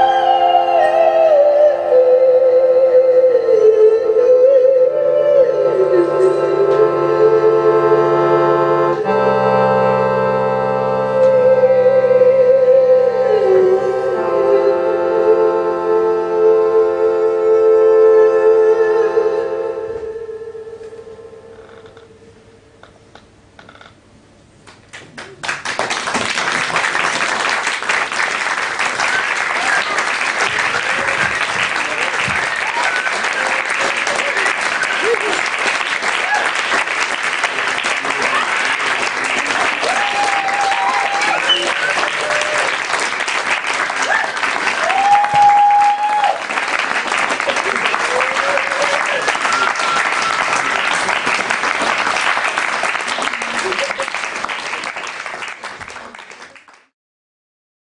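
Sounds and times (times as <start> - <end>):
audience applause: 24.9 - 56.9.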